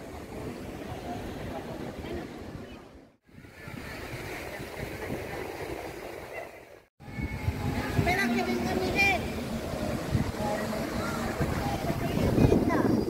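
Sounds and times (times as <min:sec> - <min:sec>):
wind rumble on microphone: 0:00.0 - 0:13.0
passers-by talking: 0:00.2 - 0:13.0.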